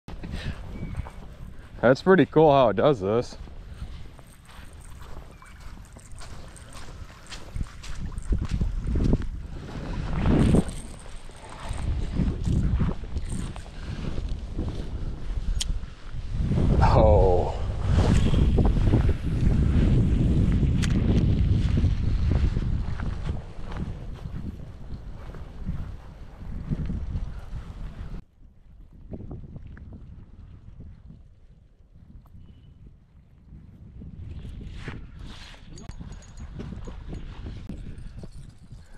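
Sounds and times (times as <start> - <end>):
wind buffeting microphone: 0.1 - 38.9
footsteps on wet grass: 3.3 - 15.2, 20.5 - 27.3.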